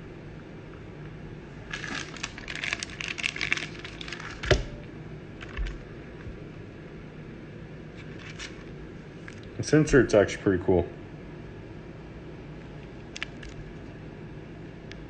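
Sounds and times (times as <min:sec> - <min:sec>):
plastic sleeve crinkling: 0:01.6 - 0:04.7, 0:05.4 - 0:05.9, 0:08.0 - 0:09.5.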